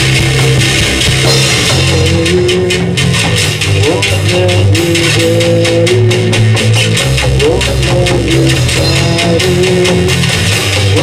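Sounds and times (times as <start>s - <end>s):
bass line: 0.0s - 11.0s
drum beat: 0.0s - 11.0s
electric guitar: 0.0s - 11.0s.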